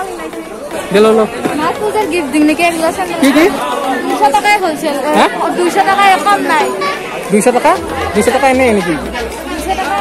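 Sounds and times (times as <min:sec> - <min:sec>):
background chatter: 0:00.0 - 0:10.0
people talking close by: 0:00.0 - 0:10.0.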